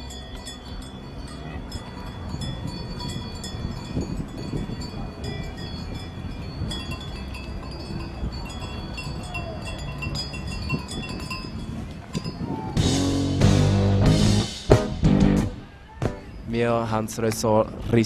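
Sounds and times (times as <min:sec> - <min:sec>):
cowbells jangling: 0:00.0 - 0:13.0.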